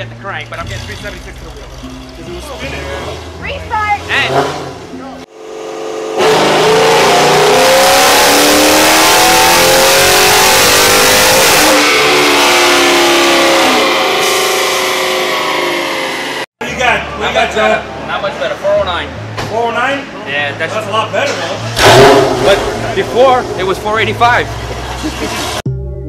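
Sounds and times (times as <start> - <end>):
people talking: 0.0 - 5.3, 16.6 - 21.7, 22.4 - 25.4
car engine revving at full throttle: 0.0 - 16.5, 21.6 - 25.6.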